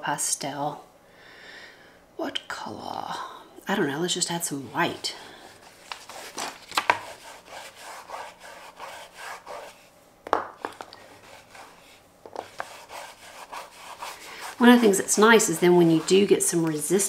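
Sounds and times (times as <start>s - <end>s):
oil pastel scratching on paper: 5.8s - 9.9s, 11.0s - 17.0s.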